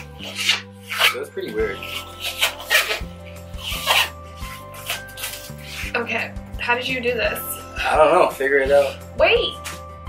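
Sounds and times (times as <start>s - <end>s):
music with bass line: 0.0s - 10.0s
tape pulled off a roll: 1.9s - 6.0s.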